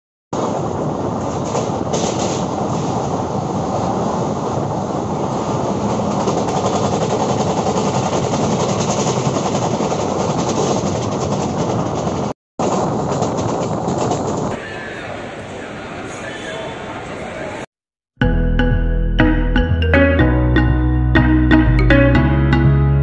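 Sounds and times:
train wheels on rails: 0.4s - 17.6s.

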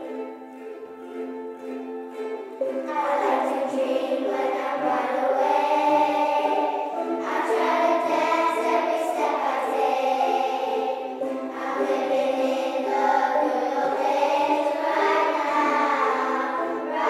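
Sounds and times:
children's choir singing: 0.0s - 17.0s
ukuleles: 0.0s - 17.0s
wooden xylophones: 0.0s - 17.0s.

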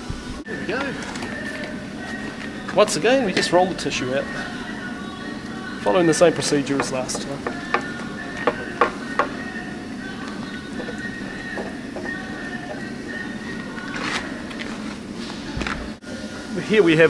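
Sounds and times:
music playing: 0.4s - 17.0s.

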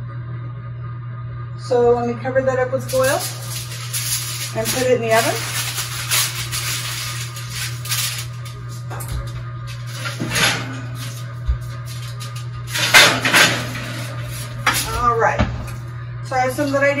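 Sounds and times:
steady low hum: 0.0s - 17.0s
aluminium foil crinkling: 2.8s - 15.8s
metal baking tray clattering: 2.9s - 15.2s.

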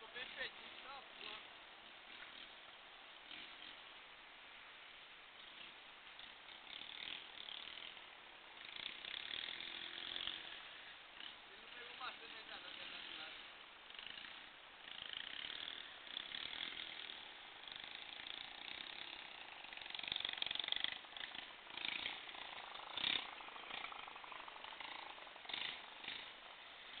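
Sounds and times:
steady noisy hiss: 0.0s - 27.0s.

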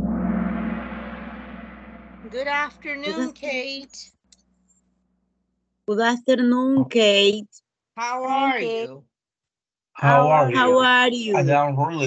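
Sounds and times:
ringing gong-like hit: 0.0s - 3.3s.

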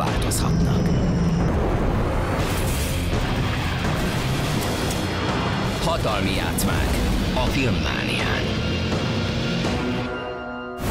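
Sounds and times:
trailer music: 0.0s - 10.9s.

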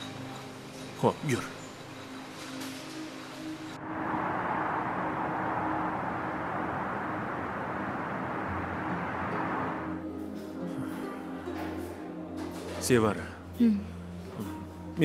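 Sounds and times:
soft background music: 0.0s - 4.1s, 5.4s - 15.0s
distant city traffic: 1.5s - 10.2s.

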